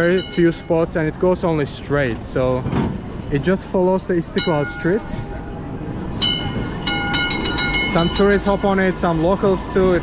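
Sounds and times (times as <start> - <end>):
high metallic ringing bell: 0.0 - 0.7, 6.2 - 8.8
tram rumbling: 0.0 - 10.0.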